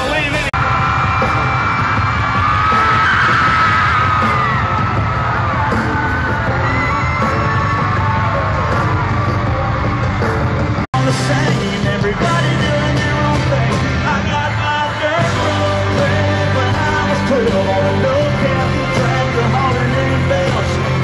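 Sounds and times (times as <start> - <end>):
crowd cheering and screaming: 0.0 - 21.0
music playing: 0.0 - 21.0.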